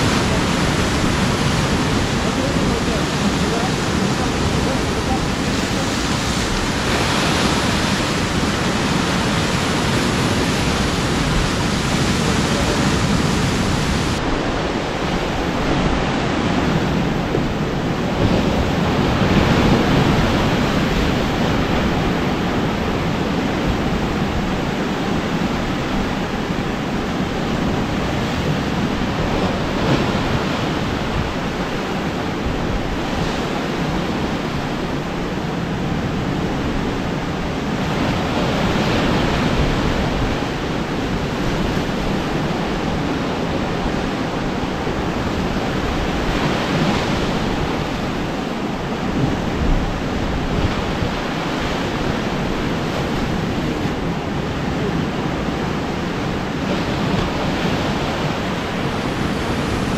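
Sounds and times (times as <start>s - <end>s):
sea waves breaking on rocks: 0.0s - 59.9s.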